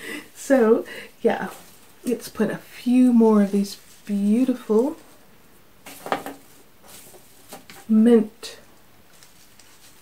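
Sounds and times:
woman's voice: 0.0 - 5.0, 7.8 - 8.7
rustling of herb stems: 0.3 - 10.0.

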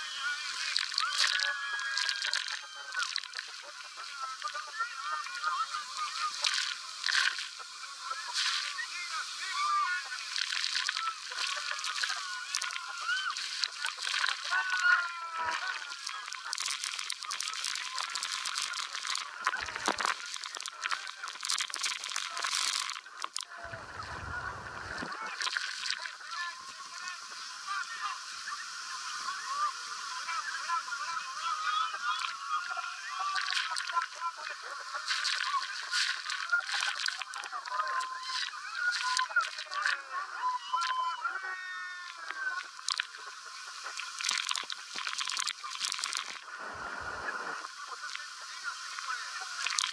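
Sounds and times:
rushing water and spray: 15.6 - 37.4, 42.6 - 49.9.

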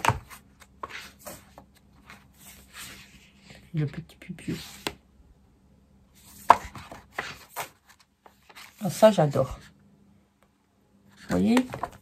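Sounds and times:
paper sheets flipped by hand: 6.3 - 9.0.

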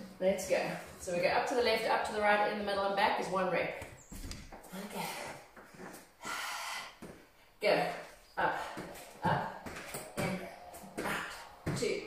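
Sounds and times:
woman speaking: 0.0 - 3.8, 4.7 - 5.4, 7.6 - 12.0
woman breathing hard: 6.2 - 7.2.

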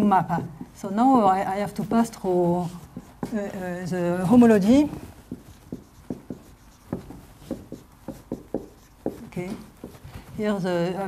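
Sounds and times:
marker writing on whiteboard: 0.0 - 10.8.

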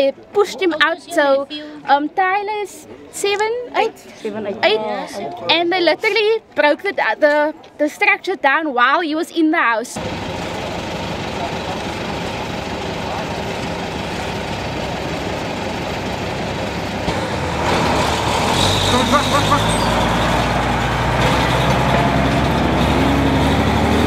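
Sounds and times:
heavy vehicle engine driving: 10.0 - 24.0.

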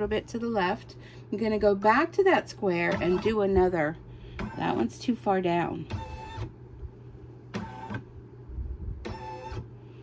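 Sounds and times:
low steady hum: 0.0 - 10.0
embroidery machine motors whining: 2.5 - 6.6, 9.0 - 9.8.

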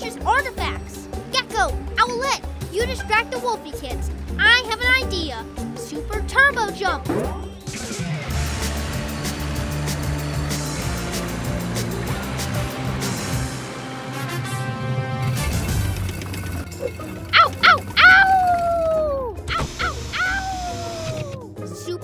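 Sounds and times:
cartoon background music: 0.0 - 22.0
cartoon wolf cub yelping: 17.3 - 21.4
cartoon wolf howling: 17.3 - 21.4.

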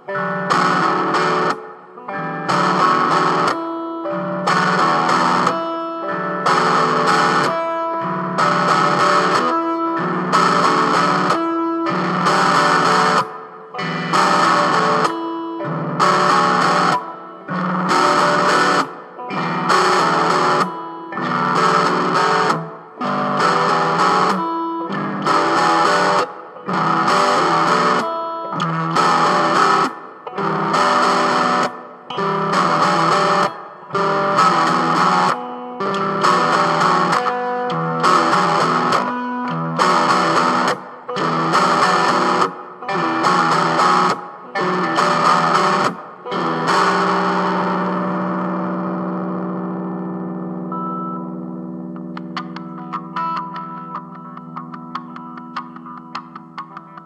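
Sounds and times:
distorted electric guitar chords: 0.0 - 57.0.

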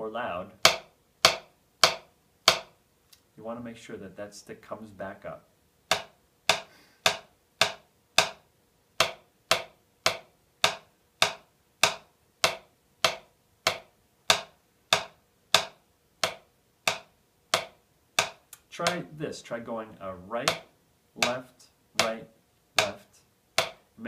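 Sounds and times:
drumstick striking a practice pad: 0.5 - 2.8, 5.8 - 19.2, 20.4 - 24.0.

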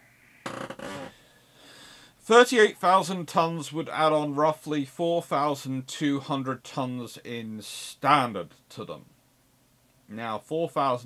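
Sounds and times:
man exhaling breathily: 1.1 - 2.2.

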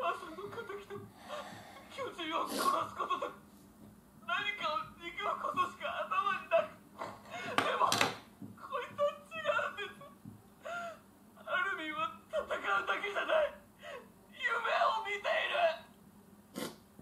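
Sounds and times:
woman crying: 0.0 - 3.4, 8.7 - 11.1
sharp gasping breath: 1.1 - 1.9.

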